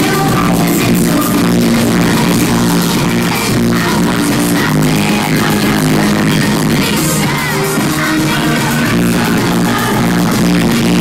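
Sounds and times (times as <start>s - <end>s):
electronic pop music: 0.0s - 11.0s
repeating synth line: 0.0s - 11.0s.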